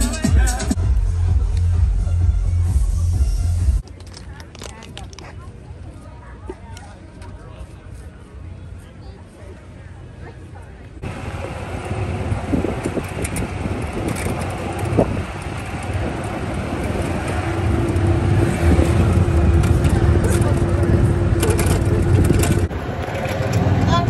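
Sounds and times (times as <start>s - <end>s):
road noise: 0.0s - 24.0s
wind rumbling on microphone: 11.0s - 24.0s.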